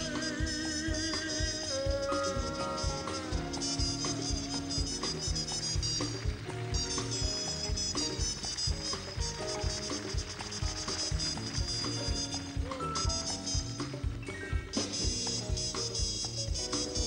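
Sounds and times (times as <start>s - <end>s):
drums with bright cymbals: 0.0s - 17.0s
jazz band playing: 0.0s - 17.0s.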